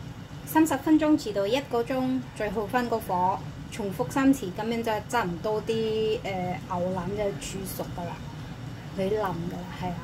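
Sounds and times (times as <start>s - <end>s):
steady low hum: 0.0s - 10.0s
woman speaking: 0.4s - 10.0s.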